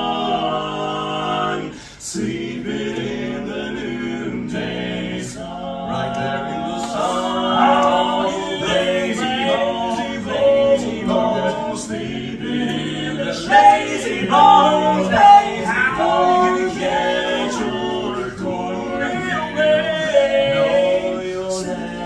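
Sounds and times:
male voices singing in harmony: 0:00.0 - 0:22.0.

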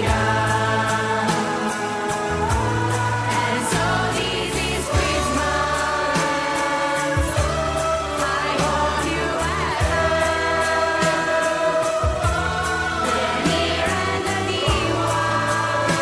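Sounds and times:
backing track with bass and beat: 0:00.0 - 0:16.0
group singing: 0:00.0 - 0:16.0.

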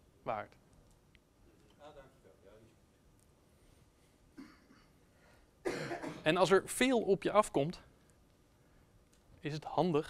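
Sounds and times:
person coughing: 0:04.4 - 0:05.0, 0:05.6 - 0:06.3.

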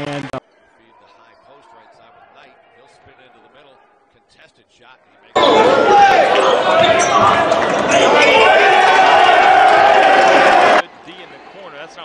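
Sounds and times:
crowd echoing in hall: 0:05.3 - 0:12.0
people shouting: 0:05.4 - 0:10.8.

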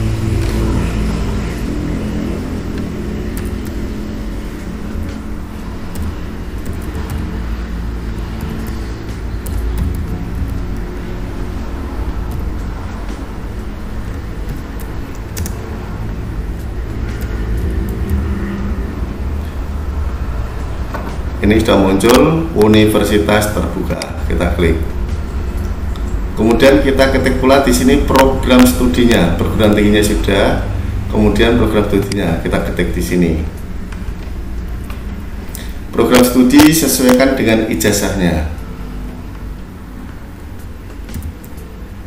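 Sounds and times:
faint pitched drone: 0:00.0 - 0:42.0
mechanical hum and rumble: 0:00.0 - 0:42.0.

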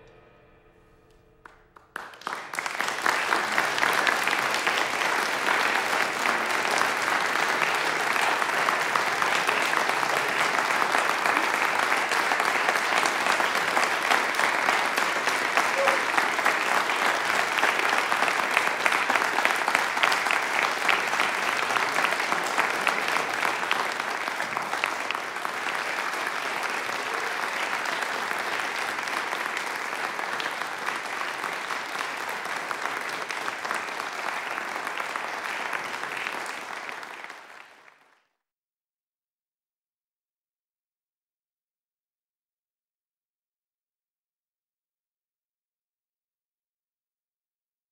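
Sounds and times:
audience applauding: 0:01.4 - 0:38.3.

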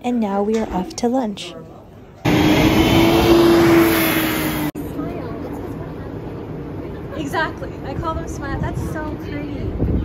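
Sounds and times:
traffic noise: 0:01.2 - 0:10.0
bus engine driving past: 0:02.3 - 0:09.8.

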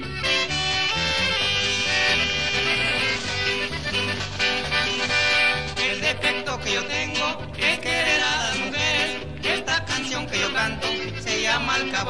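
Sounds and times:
accordion melody: 0:00.0 - 0:12.0
bouncing bass line: 0:00.0 - 0:12.0.

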